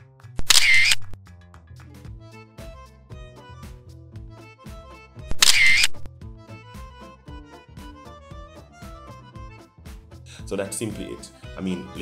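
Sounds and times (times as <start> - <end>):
camera shutter click: 0.4 - 1.2, 5.4 - 6.1
background music: 1.2 - 12.0.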